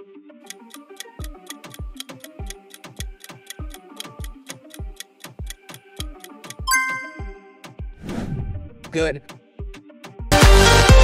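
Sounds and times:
clock-like ticking: 0.5 - 7.1
plucked melody: 6.1 - 7.6
bell-like ding: 6.7 - 7.5.

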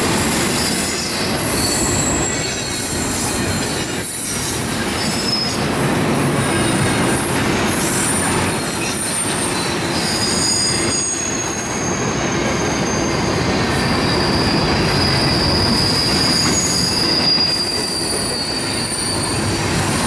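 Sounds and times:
train wheels rumbling on rail: 0.0 - 20.0
high-pitched wheel squeal: 0.1 - 5.7, 6.4 - 20.0.

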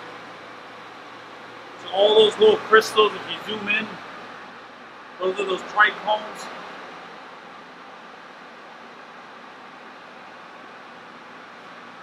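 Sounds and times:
ventilation fans hissing: 0.0 - 12.0.

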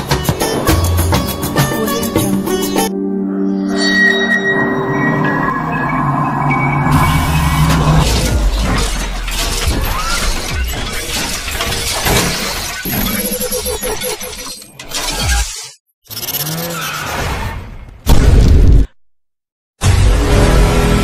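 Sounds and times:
sustained synth tones: 2.8 - 9.1
crashing shattering effects: 6.7 - 13.1.

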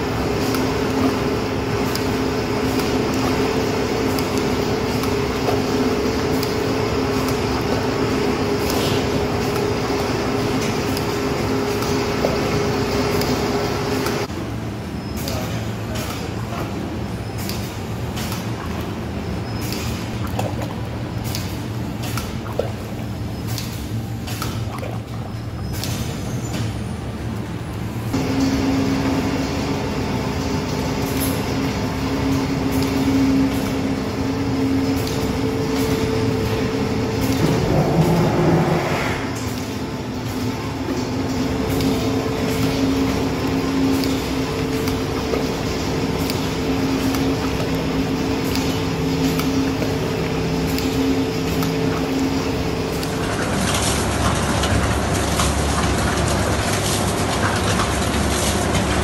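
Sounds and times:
factory machinery humming: 0.0 - 59.0
rough rushing noise: 37.4 - 39.5.

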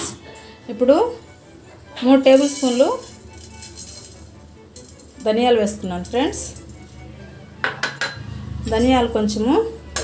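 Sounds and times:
seeds dry-roasting in a pan: 0.9 - 7.1
utensil knocking against metal pan: 7.6 - 8.2.

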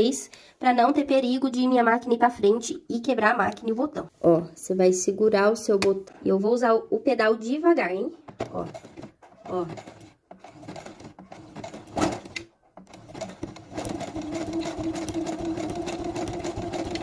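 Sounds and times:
sewing machine motor hum: 8.7 - 17.0
sewing machine needle ticking: 9.8 - 17.0.

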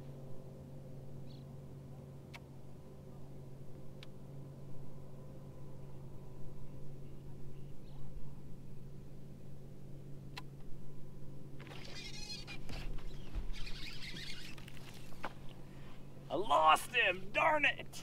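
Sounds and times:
whir of line and reel: 11.4 - 16.2.

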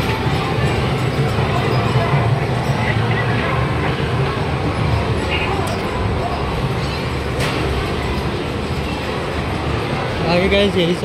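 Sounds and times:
shopping mall background noise: 0.0 - 11.0.

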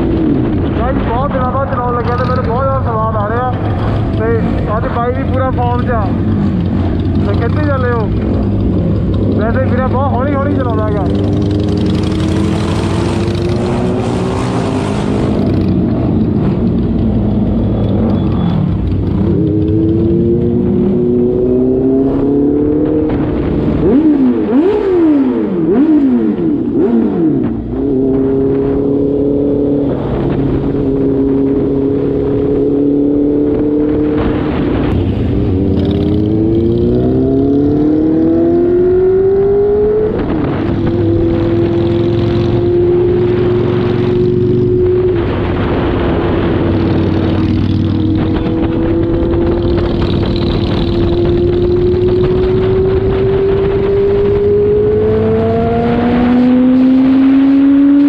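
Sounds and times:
motorcycle engine accelerating: 0.0 - 58.0.

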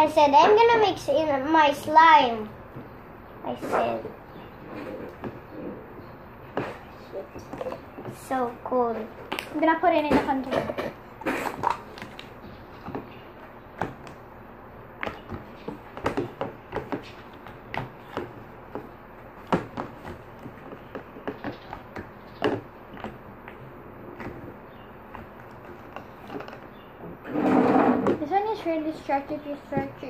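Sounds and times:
plastic cups and spoons clicking: 11.4 - 13.1.

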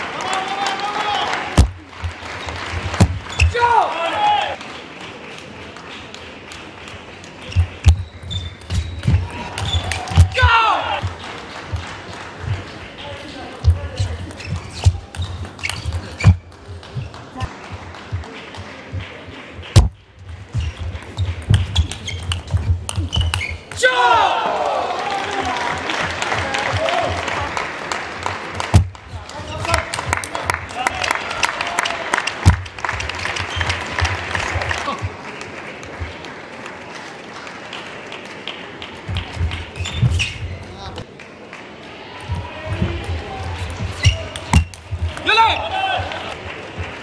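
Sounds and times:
audience applause: 0.0 - 7.8, 9.1 - 14.4, 16.5 - 19.8, 24.0 - 39.8, 41.0 - 47.0.

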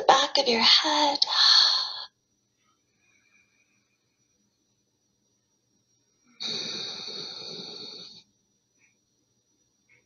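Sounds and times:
person exhaling breathily: 6.4 - 8.1.

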